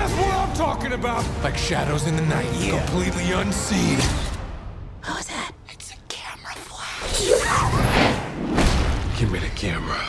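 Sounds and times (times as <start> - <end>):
person whispering: 5.0 - 7.7.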